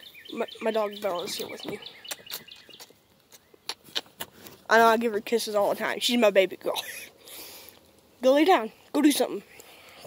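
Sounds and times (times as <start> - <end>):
person kissing dog: 2.0 - 4.4.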